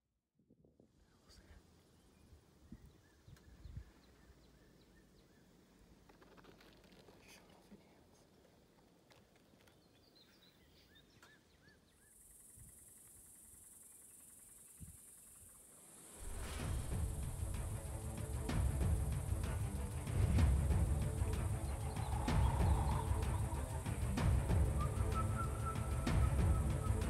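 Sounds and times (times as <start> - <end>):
high-pitched hiss: 12.0 - 27.0.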